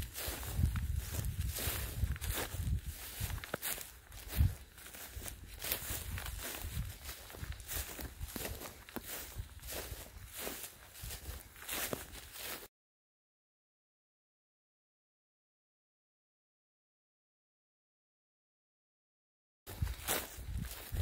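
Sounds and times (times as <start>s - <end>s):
footsteps on dry grass: 0.0s - 12.7s, 19.7s - 21.0s.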